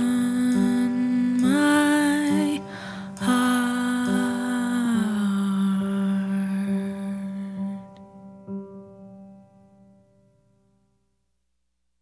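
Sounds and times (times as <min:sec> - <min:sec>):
woman's wordless vocal: 0:00.0 - 0:07.8.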